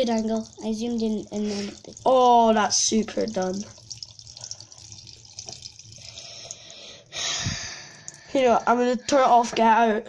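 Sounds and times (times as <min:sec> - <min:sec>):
tap water running into sink: 0:00.0 - 0:06.8.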